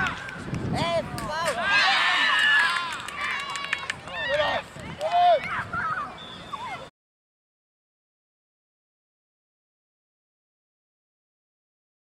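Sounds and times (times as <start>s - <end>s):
children shouting: 1.5s - 6.9s.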